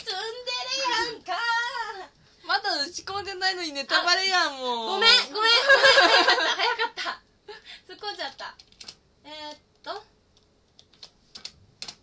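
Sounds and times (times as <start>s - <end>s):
keyboard typing clicks: 8.6s - 9.0s, 10.4s - 12.0s.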